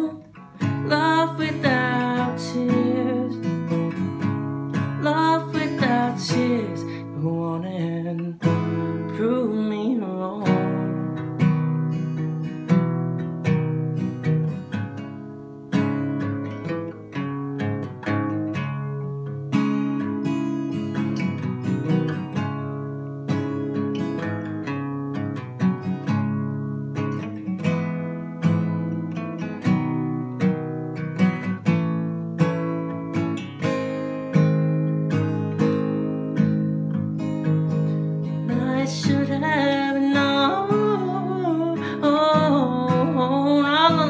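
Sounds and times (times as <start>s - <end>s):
acoustic guitar strumming: 0.0s - 44.0s.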